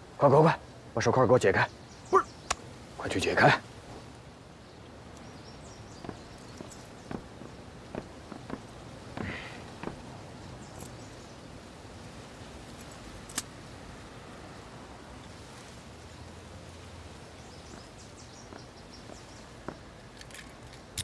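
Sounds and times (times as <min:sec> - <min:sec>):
outdoor background hum: 0:00.0 - 0:21.0
footsteps on hard surface: 0:06.0 - 0:10.0.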